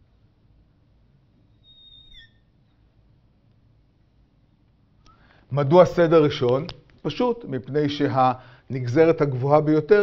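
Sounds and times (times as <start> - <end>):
marker squeaking on glass: 1.5 - 2.8.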